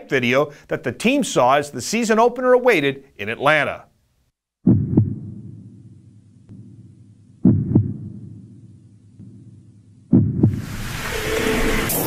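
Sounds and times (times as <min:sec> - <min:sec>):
heartbeat thumps: 0:04.6 - 0:10.9
faint low drone: 0:04.7 - 0:10.6.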